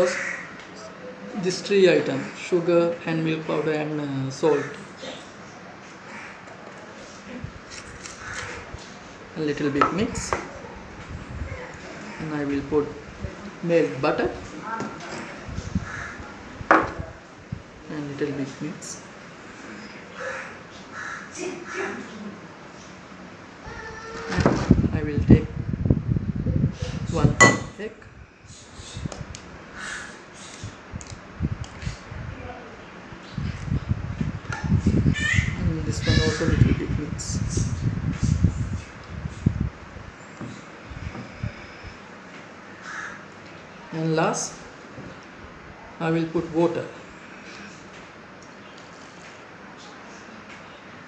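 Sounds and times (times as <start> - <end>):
crow cawing: 0.1 - 0.6, 6.1 - 6.5, 15.8 - 16.2, 20.2 - 22.0, 42.8 - 43.3.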